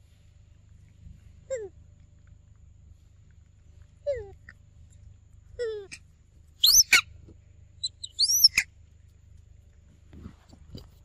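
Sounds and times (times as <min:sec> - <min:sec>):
macaque high-pitched squeals: 0:06.6 - 0:07.1, 0:07.8 - 0:08.7.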